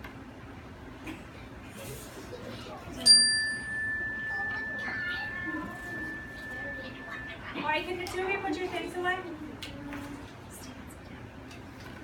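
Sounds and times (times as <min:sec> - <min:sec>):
bell chime ringing: 0:03.1 - 0:07.6.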